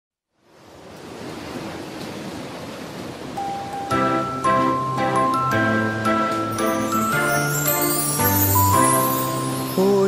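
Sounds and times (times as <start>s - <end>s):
music with chords: 3.4s - 10.0s.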